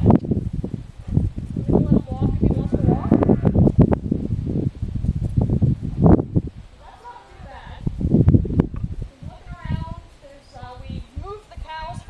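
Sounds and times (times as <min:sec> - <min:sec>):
person talking: 0:06.8 - 0:07.8.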